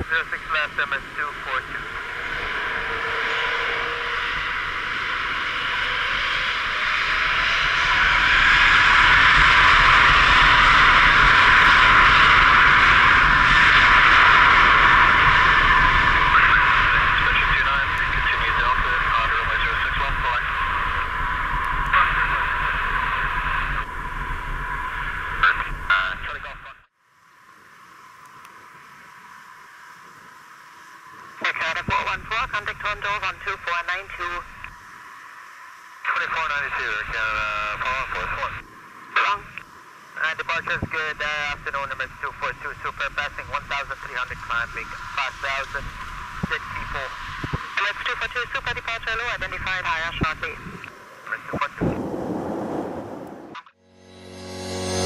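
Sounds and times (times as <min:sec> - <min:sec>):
distant engine: 0:00.0 - 0:26.6, 0:36.2 - 0:55.0
jet engines at takeoff thrust: 0:00.0 - 0:53.7.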